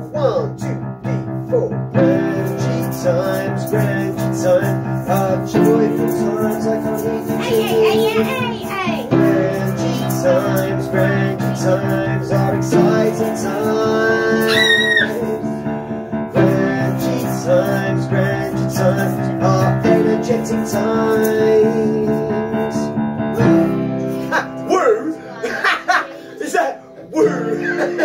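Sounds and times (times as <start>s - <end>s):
piano playing chords: 0.0s - 28.0s
voices singing: 0.0s - 28.0s.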